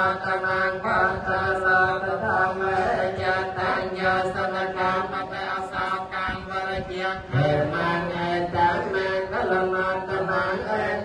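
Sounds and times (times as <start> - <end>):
chanting on held pitches: 0.0 - 11.0.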